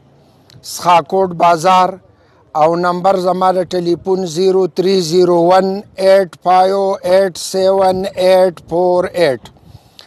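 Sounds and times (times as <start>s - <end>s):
man speaking: 0.6s - 9.5s.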